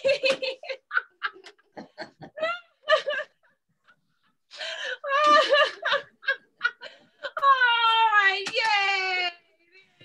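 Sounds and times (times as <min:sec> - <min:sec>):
woman laughing: 0:00.0 - 0:03.5, 0:05.0 - 0:07.5.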